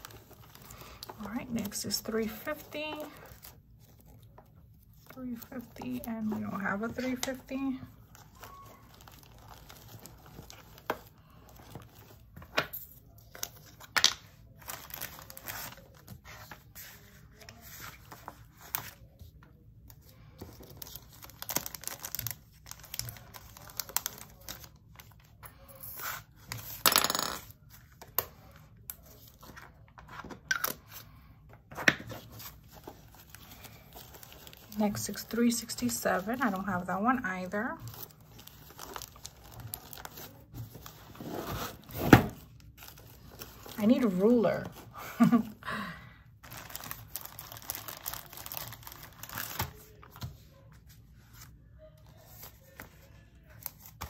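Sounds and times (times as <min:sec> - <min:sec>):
plastic rustling: 0:00.0 - 0:12.4, 0:13.0 - 0:19.3, 0:32.1 - 0:45.5, 0:46.4 - 0:51.5
plastic bags crinkling: 0:08.0 - 0:12.2, 0:14.4 - 0:16.1, 0:20.6 - 0:25.1, 0:32.3 - 0:36.5, 0:37.5 - 0:44.2, 0:46.4 - 0:50.1.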